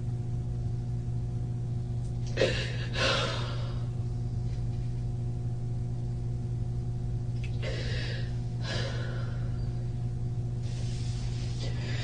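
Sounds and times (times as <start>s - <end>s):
electrical hum: 0.0s - 12.0s
woman breathing: 2.4s - 4.0s, 7.6s - 9.9s, 10.6s - 12.0s.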